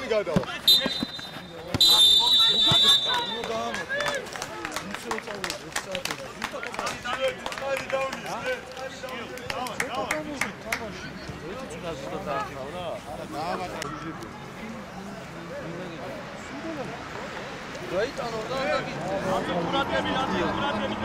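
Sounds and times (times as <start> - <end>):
players and spectators calling out: 0.0 - 4.7
referee's whistle blast: 0.6 - 3.4.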